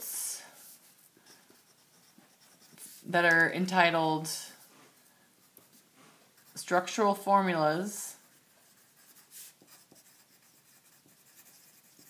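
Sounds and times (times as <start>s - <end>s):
pen writing on paper: 8.7s - 12.0s.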